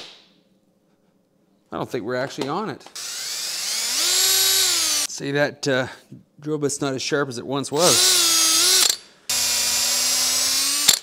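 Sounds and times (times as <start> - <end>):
cordless drill motor whining: 3.0 - 5.1, 7.9 - 11.0.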